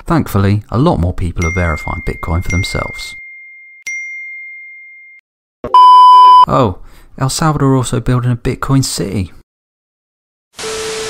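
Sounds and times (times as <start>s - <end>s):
test-pattern beep: 5.6s - 6.5s.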